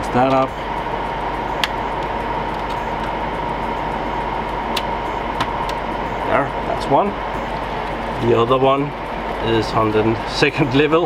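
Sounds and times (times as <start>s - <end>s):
cooling fans whirring: 0.0s - 11.0s
faint high whine: 0.0s - 11.0s.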